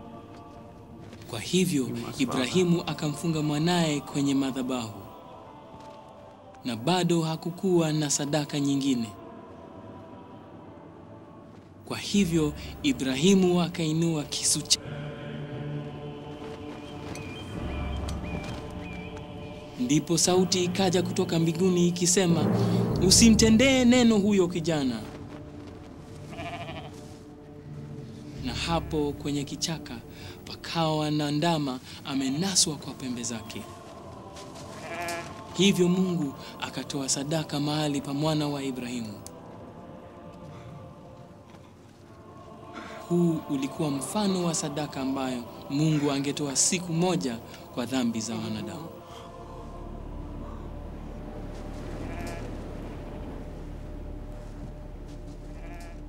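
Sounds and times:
soft background music: 0:00.0 - 0:56.0
ram bleating: 0:26.3 - 0:27.0, 0:34.6 - 0:35.4, 0:51.8 - 0:53.1, 0:55.4 - 0:56.0
steady low hum: 0:47.2 - 0:55.4.

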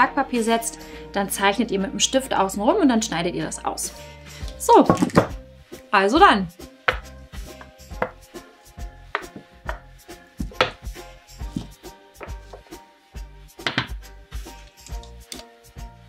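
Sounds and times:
rolling pin knocking on pastry: 0:06.9 - 0:07.1, 0:07.9 - 0:08.2, 0:09.1 - 0:11.0, 0:13.6 - 0:14.0
dull thuds: 0:09.1 - 0:12.7.

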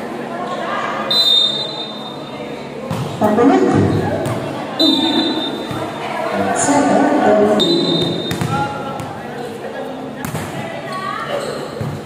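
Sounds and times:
murmur of spectators: 0:00.0 - 0:12.0
referee's whistle blast: 0:01.1 - 0:02.1, 0:04.8 - 0:05.7, 0:07.6 - 0:08.4.

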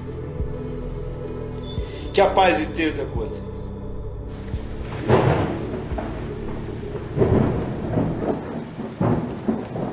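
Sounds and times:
steady rain hiss: 0:04.3 - 0:09.9
rolls of thunder: 0:04.7 - 0:09.9.

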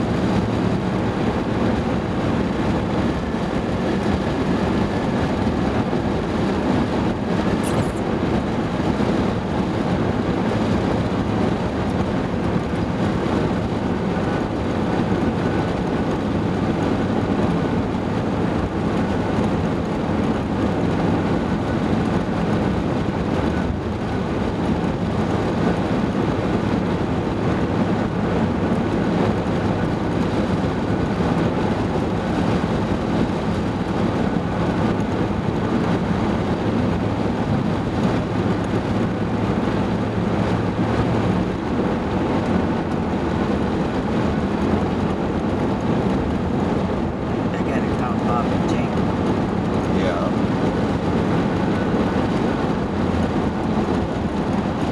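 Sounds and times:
car engine hum: 0:00.0 - 0:54.9
tyre noise on road: 0:00.0 - 0:54.9.

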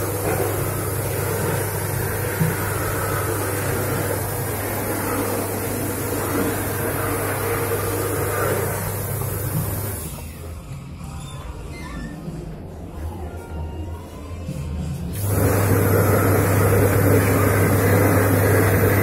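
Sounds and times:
low electric hum: 0:12.2 - 0:19.0.

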